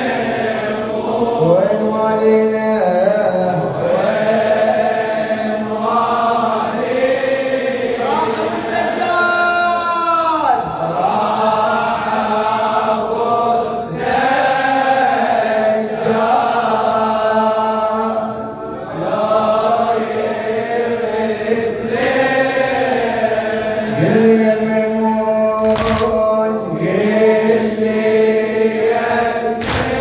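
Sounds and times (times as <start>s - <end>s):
person chanting into microphone: 0.0s - 30.0s.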